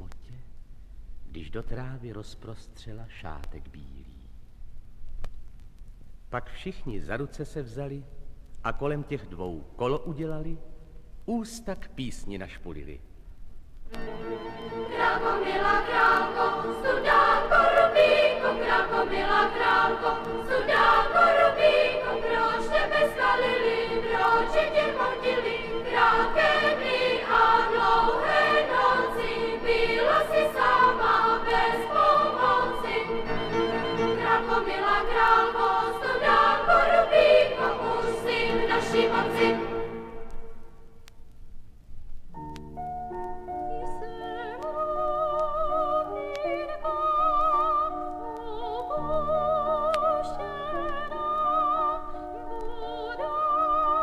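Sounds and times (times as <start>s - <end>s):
strings and piano: 13.9s - 40.6s, 42.3s - 46.1s
children's choir singing: 14.1s - 40.5s.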